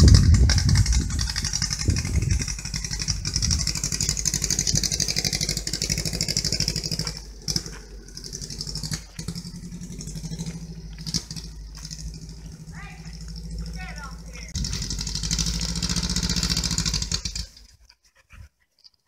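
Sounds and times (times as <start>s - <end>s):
car engine pulsing drone: 0.0s - 17.8s.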